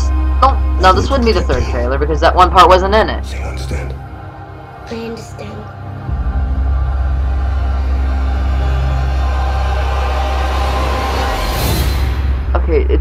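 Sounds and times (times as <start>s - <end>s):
sustained tones: 0.0s - 11.8s
bright whooshing swell: 0.0s - 12.5s
deep bass rumble: 0.0s - 13.0s.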